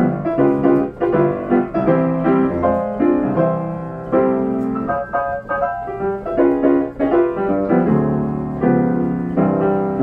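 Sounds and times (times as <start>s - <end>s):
player piano chords: 0.0s - 10.0s.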